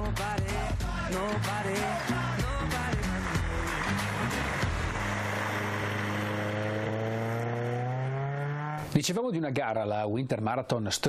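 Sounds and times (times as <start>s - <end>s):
music with a beat: 0.0s - 5.3s
car engine accelerating: 2.5s - 9.0s.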